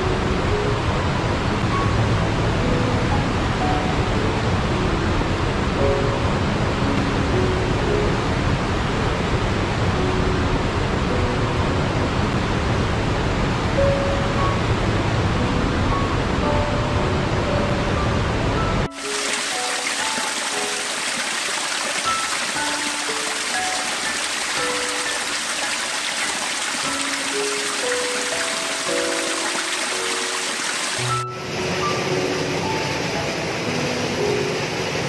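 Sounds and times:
soft faint musical notes: 0.0s - 35.0s.

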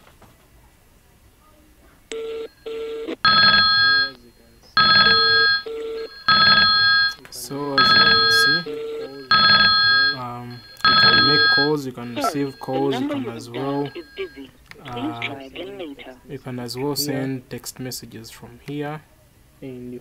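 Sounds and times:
electronic ringtone bursts: 2.2s - 4.2s, 4.8s - 14.5s
short low beeps: 7.8s - 14.5s.

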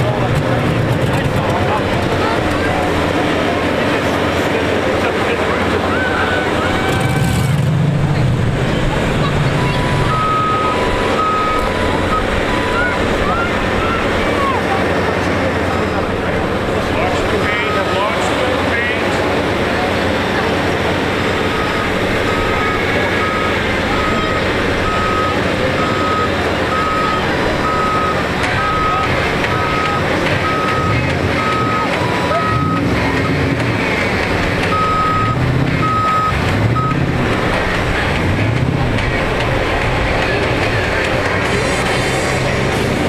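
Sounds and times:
engine revving: 0.0s - 43.0s
engines running: 0.0s - 43.0s
reversing alarm beeping: 9.4s - 14.2s, 21.1s - 33.0s, 34.7s - 37.1s.

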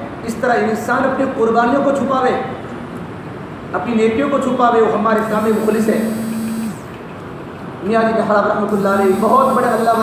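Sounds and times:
man speaking: 7.9s - 10.0s.

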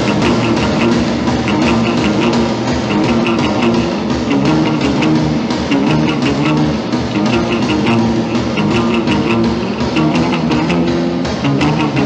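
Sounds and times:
drum beat with cymbal hits: 0.0s - 12.0s
rock guitar: 0.0s - 12.0s.

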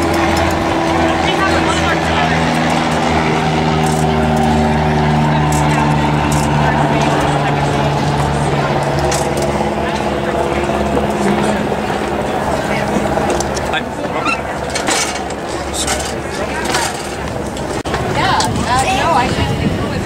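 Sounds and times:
engine droning: 0.0s - 20.0s
indistinct voices chattering: 0.0s - 20.0s.

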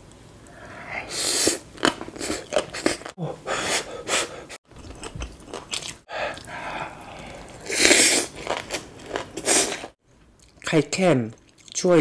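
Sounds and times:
slurping food: 5.7s - 10.0s.

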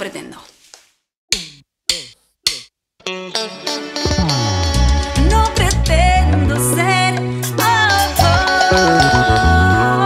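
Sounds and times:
electronic drum hits: 4.1s - 4.8s.

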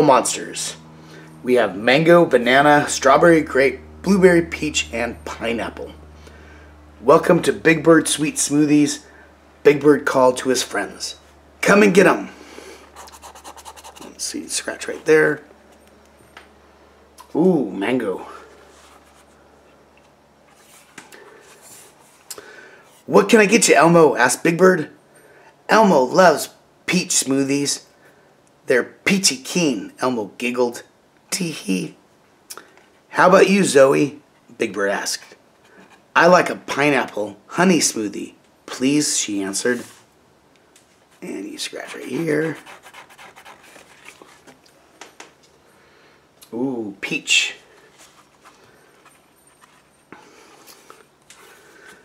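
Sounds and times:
cardboard book rubbing: 12.9s - 15.1s, 18.4s - 19.5s, 20.4s - 22.2s, 41.7s - 44.6s, 47.8s - 50.0s
book page turning: 41.9s - 44.7s, 47.8s - 50.0s.

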